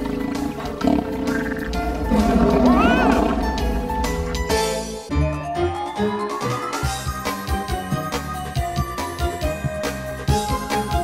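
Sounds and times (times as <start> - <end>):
background music: 0.0 - 11.0
monster snarling roar: 0.8 - 3.7
rising and falling cry: 1.4 - 3.6.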